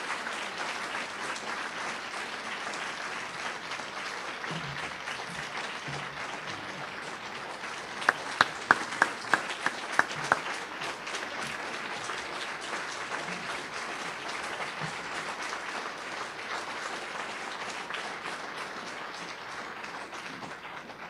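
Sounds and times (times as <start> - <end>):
audience applauding: 0.0 - 21.0
person clapping loudly close by: 7.9 - 12.2.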